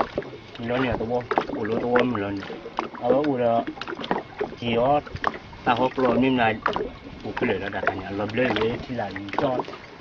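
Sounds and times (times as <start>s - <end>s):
man talking: 0.6s - 3.7s, 4.6s - 9.7s.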